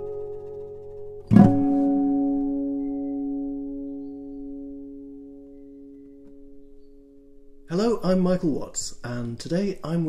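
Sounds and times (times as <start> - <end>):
acoustic guitar chord ringing: 0.0 - 8.0.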